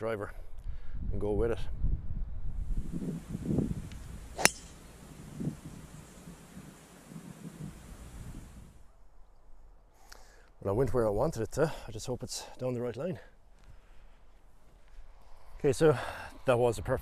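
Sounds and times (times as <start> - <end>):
golf club striking ball: 3.8 - 6.6.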